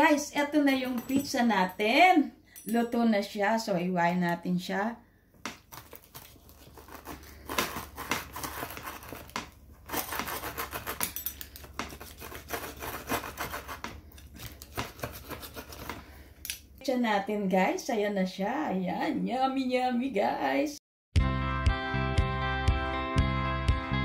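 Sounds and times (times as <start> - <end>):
pizza cutter crunching through crust: 5.6 - 16.2.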